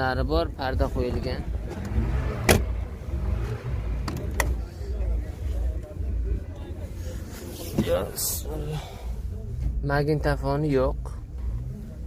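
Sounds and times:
car door latch clicking: 0:01.7 - 0:02.7.

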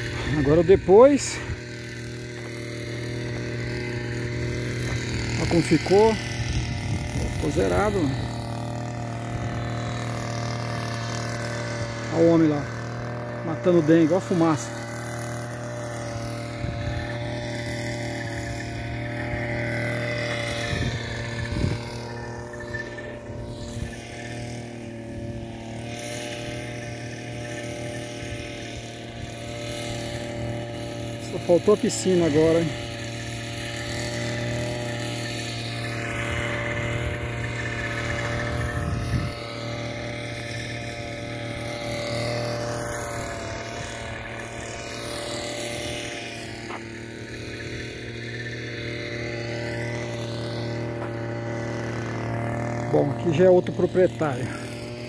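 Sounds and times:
engine running steadily: 0:00.0 - 0:55.0.

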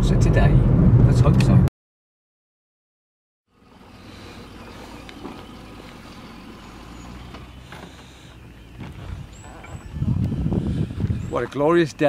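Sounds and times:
car engine idling: 0:03.5 - 0:12.0.

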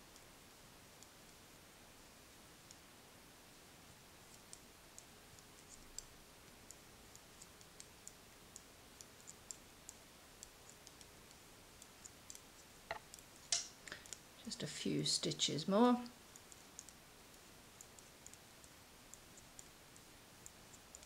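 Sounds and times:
knitting needles clicking: 0:04.3 - 0:14.3, 0:16.0 - 0:21.0.

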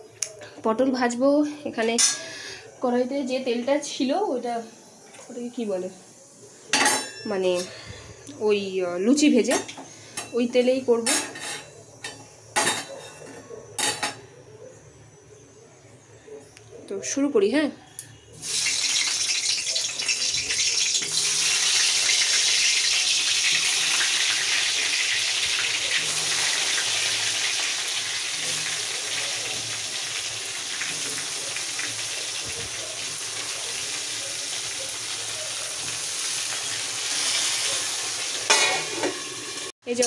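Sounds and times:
vegetables sizzling in hot oil: 0:01.9 - 0:07.7, 0:18.3 - 0:40.0.

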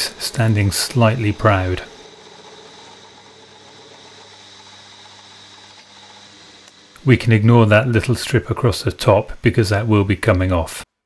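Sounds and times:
thin high whine: 0:00.0 - 0:10.1
milling machine motor hum: 0:00.0 - 0:10.2.

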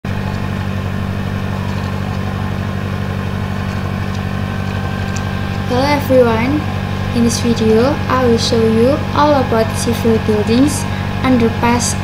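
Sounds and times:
low mechanical hum with flutter: 0:00.0 - 0:12.0
woman speaking: 0:05.7 - 0:12.0.

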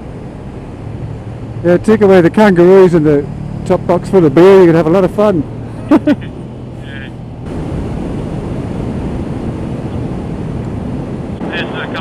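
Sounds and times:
motorcycle engine hum: 0:00.0 - 0:12.0
wind rushing over microphone: 0:00.0 - 0:12.0.

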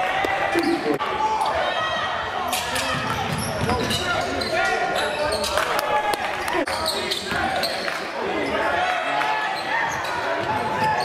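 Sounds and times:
voices in gym: 0:00.0 - 0:11.0.

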